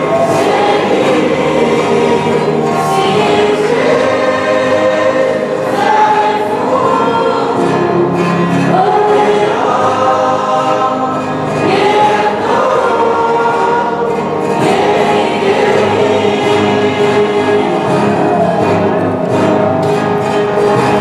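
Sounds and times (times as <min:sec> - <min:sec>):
group of singers singing: 0:00.0 - 0:21.0.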